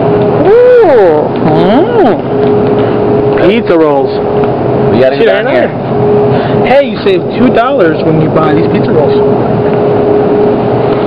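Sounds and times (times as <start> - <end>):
constant mid-pitched tone: 0.0 - 11.0
machine hum and hiss: 0.0 - 11.0.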